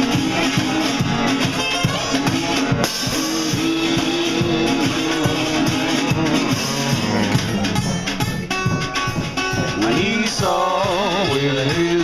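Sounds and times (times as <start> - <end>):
man singing: 0.0 - 8.0, 9.6 - 12.0
acoustic guitar: 0.0 - 12.0
drums: 0.0 - 12.0.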